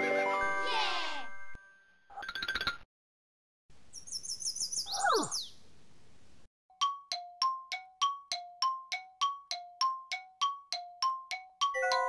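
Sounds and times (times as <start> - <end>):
high twittering chirp: 3.9 - 5.6.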